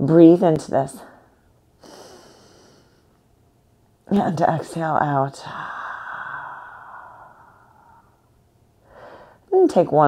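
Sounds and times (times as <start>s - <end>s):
woman breathing in: 1.8s - 3.2s, 5.6s - 9.5s.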